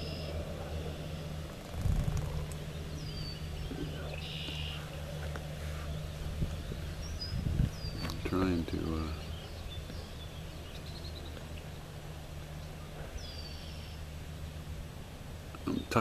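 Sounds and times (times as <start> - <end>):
faint high bird calls: 0.0 - 8.3, 12.6 - 14.1
wind buffeting microphone: 1.4 - 4.2, 6.0 - 10.8.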